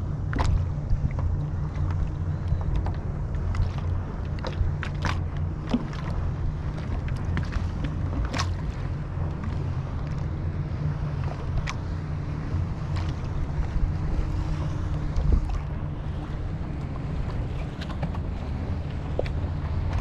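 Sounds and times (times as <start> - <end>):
water lapping against kayak hull: 0.0 - 20.0
wind buffeting microphone: 0.0 - 20.0.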